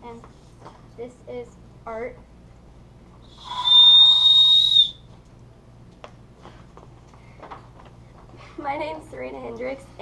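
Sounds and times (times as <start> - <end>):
whistle blown: 3.3 - 5.1.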